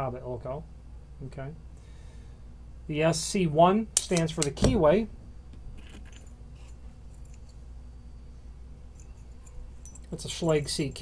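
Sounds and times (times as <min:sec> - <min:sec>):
keys clinking: 0:05.8 - 0:07.7, 0:08.9 - 0:11.0.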